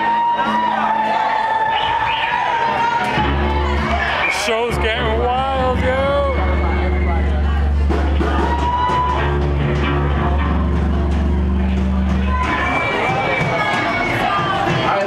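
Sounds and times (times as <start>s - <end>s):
crowd noise and voices: 0.0s - 15.0s
live band music through pa: 0.0s - 15.0s.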